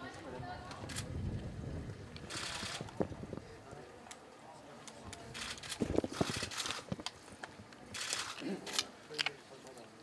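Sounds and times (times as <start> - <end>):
wind buffeting microphone: 0.0 - 3.8, 5.2 - 7.7.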